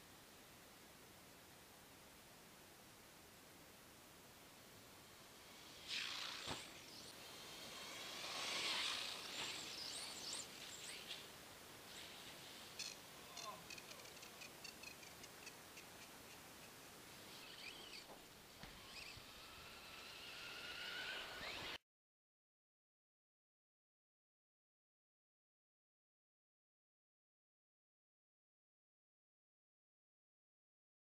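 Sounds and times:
toy buggy motor whining: 5.4 - 11.2, 12.7 - 15.6, 17.3 - 21.8.

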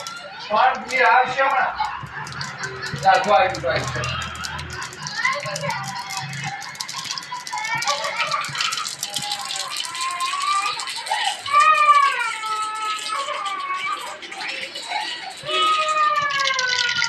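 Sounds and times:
seeds crackling in hot oil: 0.0 - 17.0.

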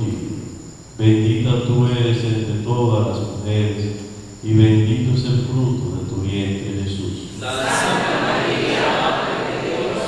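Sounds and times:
man reciting prayer in monotone: 0.0 - 7.6.

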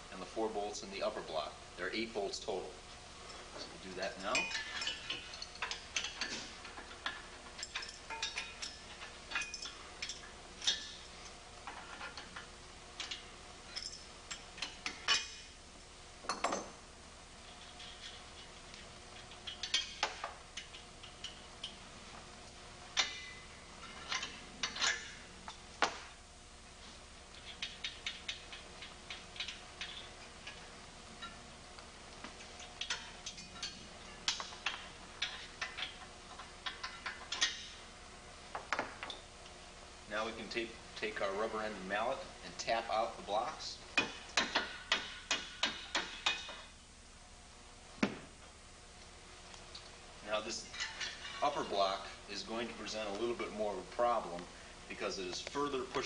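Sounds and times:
wrenches clicking on steel bolts: 3.9 - 11.0, 23.0 - 26.0, 32.7 - 37.8.

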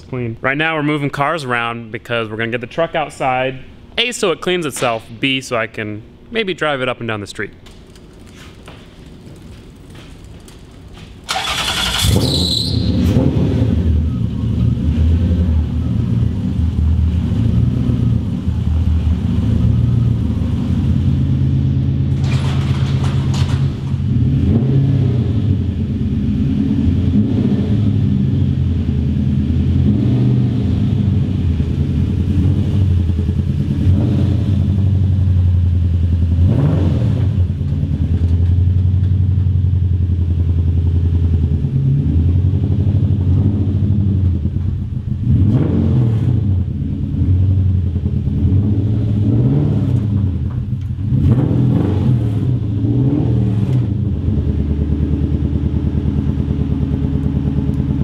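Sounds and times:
loud engine revving: 11.3 - 23.0, 24.1 - 28.5, 29.1 - 35.2, 36.2 - 37.5, 41.6 - 44.2, 45.2 - 50.4, 51.0 - 58.0.

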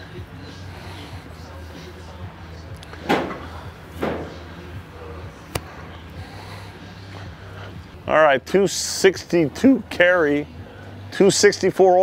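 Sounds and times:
steady low hum: 0.0 - 11.2.

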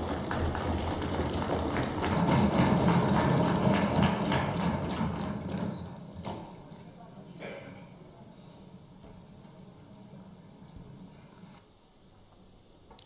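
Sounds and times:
people clapping: 0.0 - 5.9.

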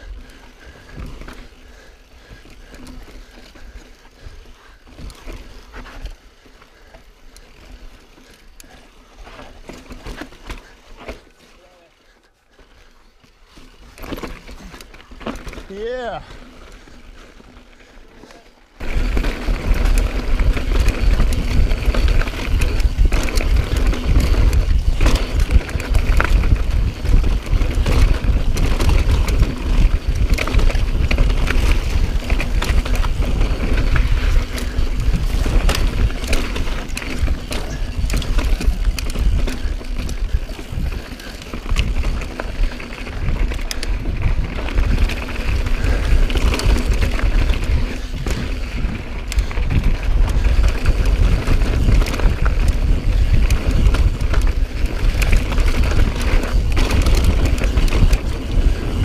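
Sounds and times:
bike rattling: 0.0 - 59.0
bike tyres crunching over stones: 0.0 - 59.0
wind buffeting on microphone: 18.8 - 59.0.

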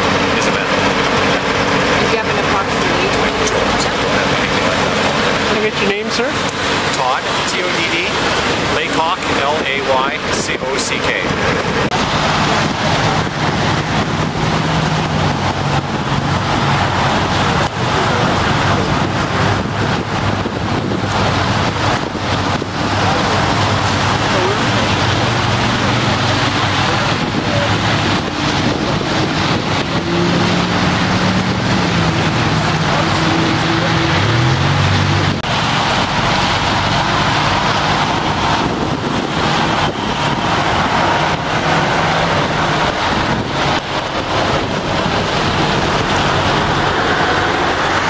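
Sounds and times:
road traffic noise: 0.0 - 48.0
vehicle engine hum: 0.0 - 48.0
wind on microphone: 0.0 - 48.0.

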